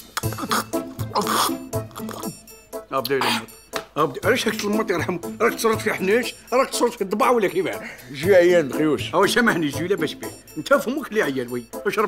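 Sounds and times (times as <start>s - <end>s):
background music: 0.0s - 12.0s
man coughing: 3.1s - 3.6s.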